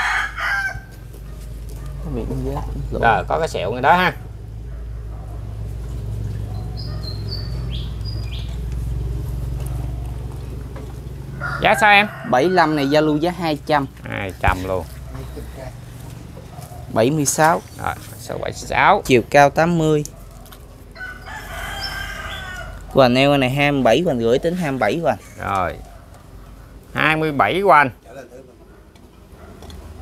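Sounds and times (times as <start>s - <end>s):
rooster crowing: 0.0s - 1.2s, 11.2s - 13.5s, 20.8s - 23.0s
high thin bird chirps: 6.2s - 8.9s.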